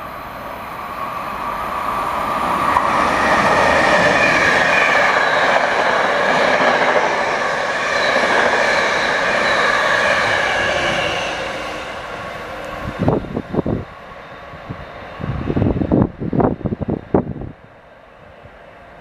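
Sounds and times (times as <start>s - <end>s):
train passing at speed: 0.0s - 19.0s.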